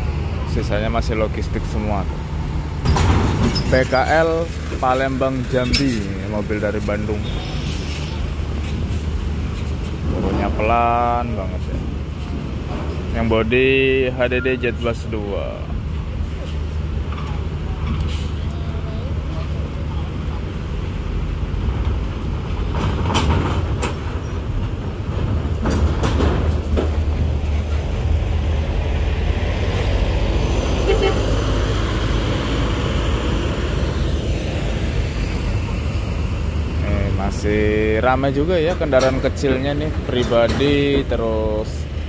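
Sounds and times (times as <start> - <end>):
diesel bus engine running: 0.0 - 42.0.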